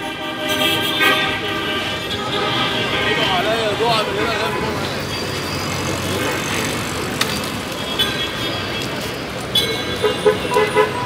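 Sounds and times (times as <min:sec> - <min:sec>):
vehicle engines and tyres: 0:00.0 - 0:11.0
people's voices: 0:02.0 - 0:10.0.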